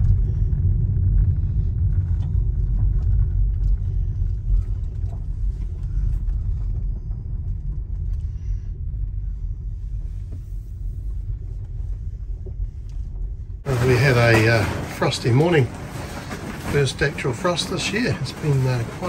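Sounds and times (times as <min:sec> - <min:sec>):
car rumbling from inside cabin: 0:00.0 - 0:19.0.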